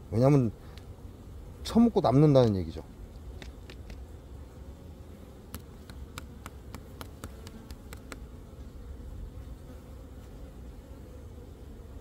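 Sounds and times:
honeybees humming: 0:00.0 - 0:12.0.

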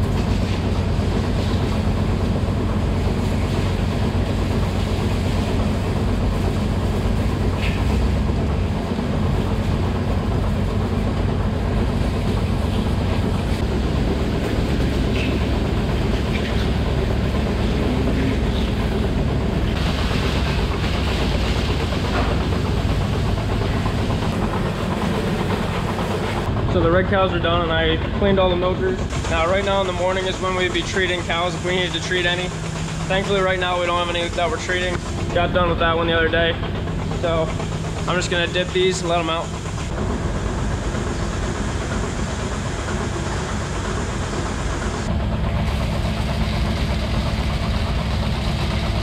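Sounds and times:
hose spraying water: 0:00.0 - 0:08.0, 0:19.7 - 0:26.5, 0:29.3 - 0:36.5
low hum of milking system: 0:00.0 - 0:49.0.

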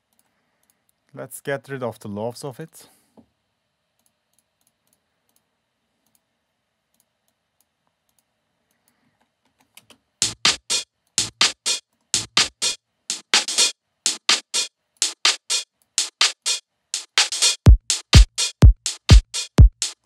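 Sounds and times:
electronic hi-hat percussion loop: 0:10.2 - 0:20.0.

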